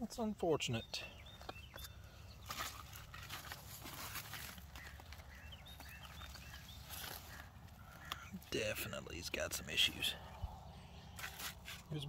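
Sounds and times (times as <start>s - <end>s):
bird chirping: 0.0s - 12.0s
leaves rustling: 2.4s - 8.5s, 11.2s - 12.0s.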